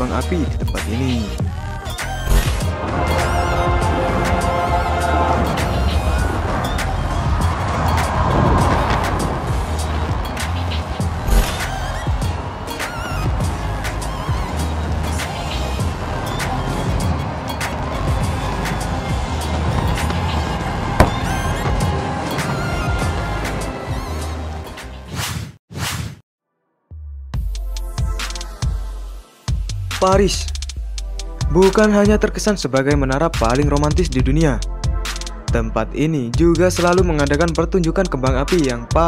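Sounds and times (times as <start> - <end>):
music: 0.0 - 25.3, 26.4 - 39.0
fireworks rumble: 2.7 - 12.5, 16.8 - 23.6
fireworks cracking: 7.5 - 11.8
low hit: 20.9 - 23.2.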